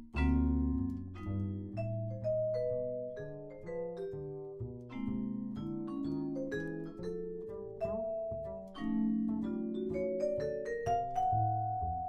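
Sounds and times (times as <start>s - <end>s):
upright bass: 0.0s - 12.0s
vibraphone played with mallets: 0.0s - 12.0s.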